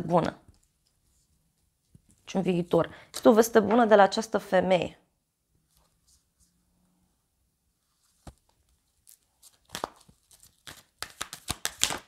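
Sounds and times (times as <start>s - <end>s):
cards being shuffled: 8.0s - 12.0s.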